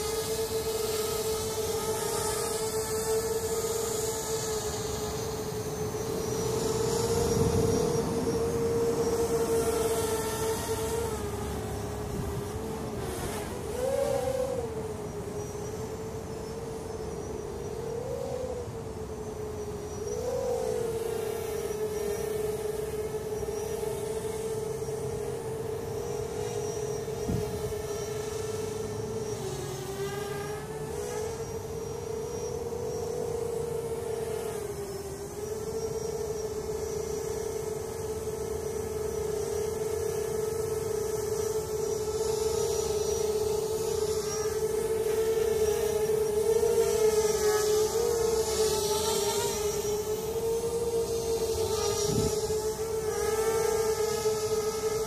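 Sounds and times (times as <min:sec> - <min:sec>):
quadcopter propellers humming: 0:00.0 - 0:55.0.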